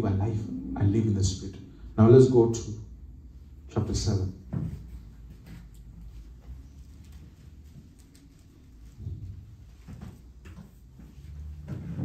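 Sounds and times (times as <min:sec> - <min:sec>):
microphone handling bumps: 0:04.4 - 0:05.7.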